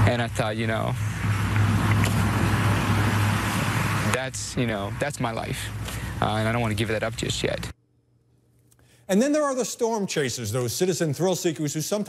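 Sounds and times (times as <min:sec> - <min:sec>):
vehicle engine humming: 0:00.0 - 0:07.8.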